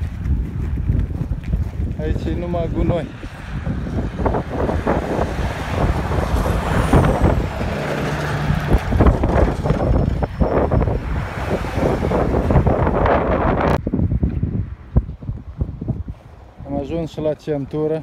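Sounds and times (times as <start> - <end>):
wind on microphone: 0.0 - 17.4
heavy road traffic: 0.0 - 18.0.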